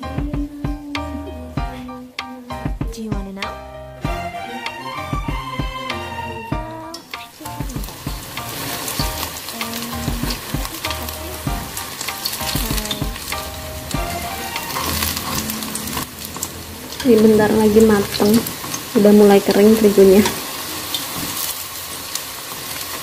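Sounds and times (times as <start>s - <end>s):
frying sizzle in oil: 7.0s - 23.0s.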